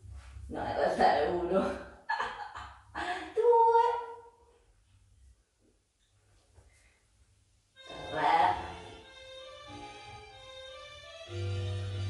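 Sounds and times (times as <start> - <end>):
woman's voice: 0.5 - 4.3, 7.9 - 8.8.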